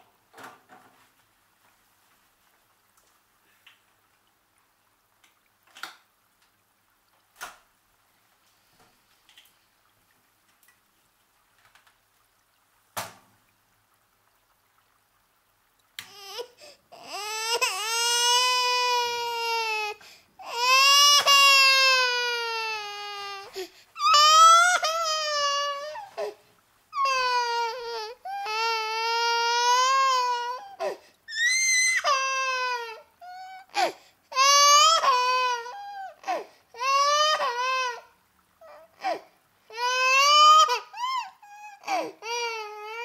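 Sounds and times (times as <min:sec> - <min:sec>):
infant crying: 0:16.0 - 0:43.0.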